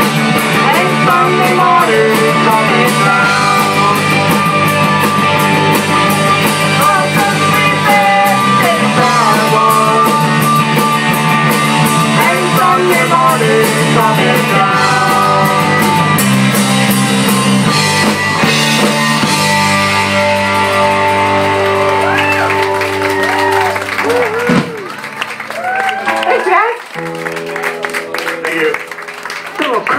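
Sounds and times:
live country-rock band playing: 0.0s - 29.9s.

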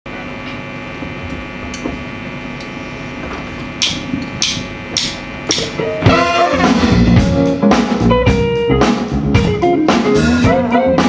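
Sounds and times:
amplifier electrical hum: 0.1s - 8.8s
drumstick count-in strikes: 2.6s - 7.4s.

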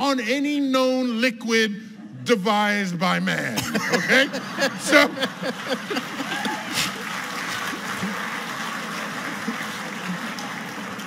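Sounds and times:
audience laughing: 3.5s - 10.4s
audience applauding: 3.8s - 11.0s.

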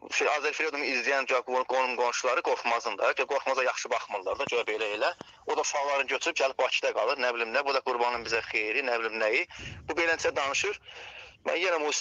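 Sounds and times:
person talking: 0.0s - 12.0s.

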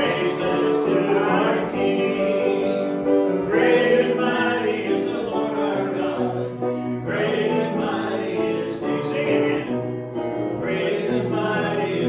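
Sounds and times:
congregation singing: 0.0s - 12.0s
musical accompaniment: 0.0s - 12.0s.

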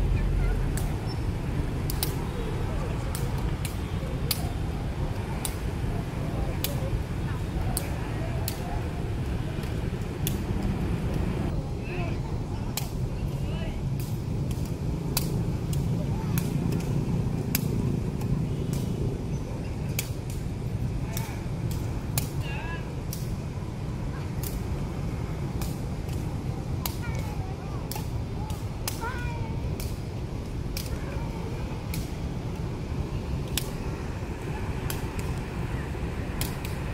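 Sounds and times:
motorbike traffic hum: 0.0s - 36.9s.

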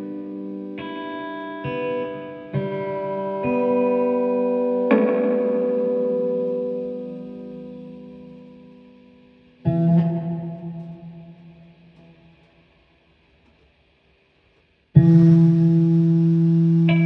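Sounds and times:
electric guitar chords ringing: 0.0s - 12.7s, 15.0s - 17.0s.

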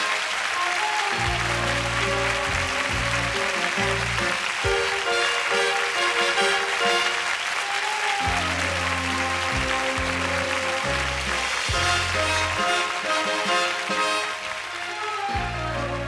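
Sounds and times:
audience applauding: 0.0s - 16.0s
orchestra playing with stepping bass: 0.0s - 16.0s.

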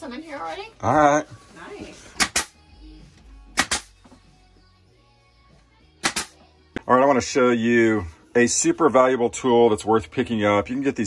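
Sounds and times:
nail gun firing into wood: 2.2s - 2.5s, 3.6s - 3.9s, 6.0s - 6.4s.

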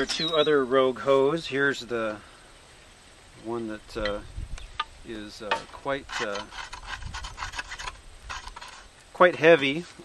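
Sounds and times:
hoes scratching and clicking: 4.8s - 9.9s.

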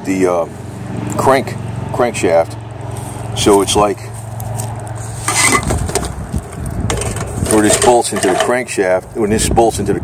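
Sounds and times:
rustling and scraping in cardboard box: 4.2s - 8.4s.

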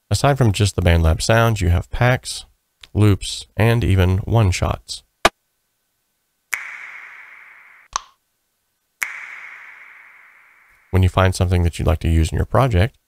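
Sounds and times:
finger snap with reverb: 6.5s - 8.2s, 9.0s - 11.0s.

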